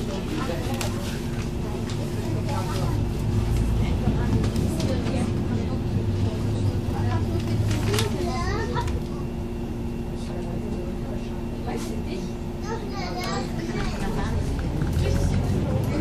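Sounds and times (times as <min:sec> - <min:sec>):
bus engine humming: 0:00.0 - 0:16.0
people's voices: 0:00.0 - 0:16.0.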